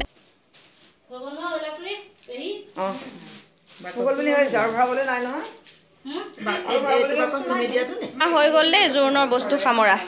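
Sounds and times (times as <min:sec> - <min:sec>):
women talking: 0:03.8 - 0:10.0.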